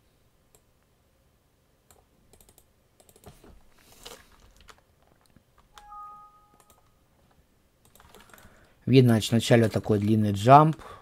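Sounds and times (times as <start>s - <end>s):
electronic two-tone chime: 5.8s - 6.9s.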